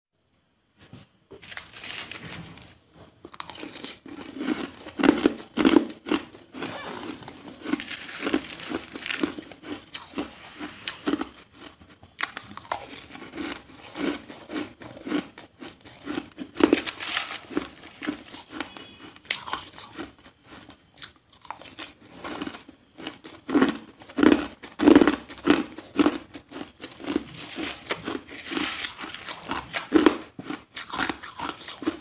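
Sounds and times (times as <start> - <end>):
shaved ice being chewed: 3.2 - 32.0.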